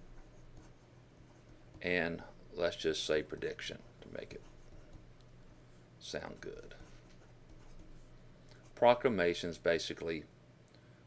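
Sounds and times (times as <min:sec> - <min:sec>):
pen scratching on paper: 0:00.0 - 0:01.9, 0:04.3 - 0:05.1, 0:06.4 - 0:08.8
man speaking: 0:01.8 - 0:04.6, 0:06.0 - 0:06.9, 0:08.8 - 0:10.3.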